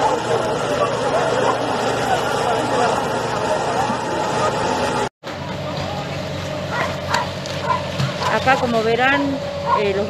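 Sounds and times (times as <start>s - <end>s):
dog barking: 0.0s - 0.5s, 6.7s - 8.4s, 9.1s - 10.0s
people's voices and commotion: 0.0s - 10.0s.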